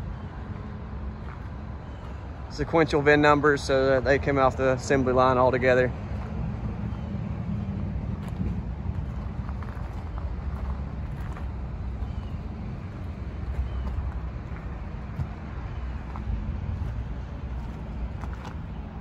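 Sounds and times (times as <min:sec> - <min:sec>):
low outdoor rumble: 0:00.0 - 0:19.0
footsteps on gravel: 0:06.1 - 0:07.1, 0:08.1 - 0:19.0.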